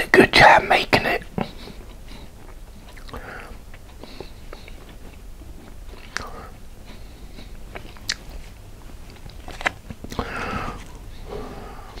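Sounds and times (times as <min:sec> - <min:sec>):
man chewing food: 0:00.7 - 0:12.0.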